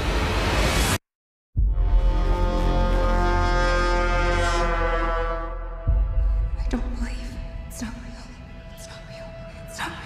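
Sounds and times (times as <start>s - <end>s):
low horn-like tone: 1.6s - 6.5s.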